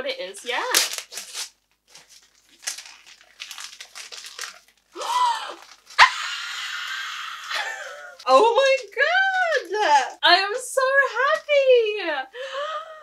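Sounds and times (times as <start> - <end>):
wrapping paper crinkling and tearing: 0.3 - 10.2
excited scream: 5.0 - 8.1.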